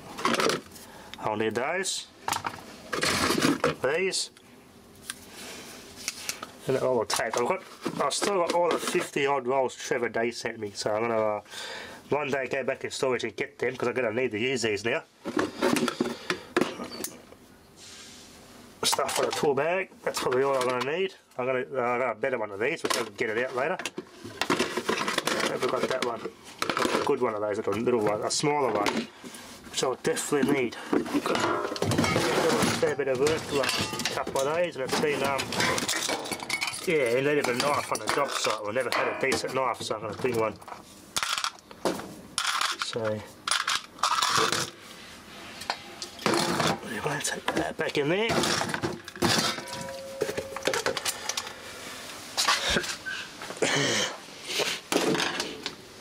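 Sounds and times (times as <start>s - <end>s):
faint hiss: 17.6s - 18.9s.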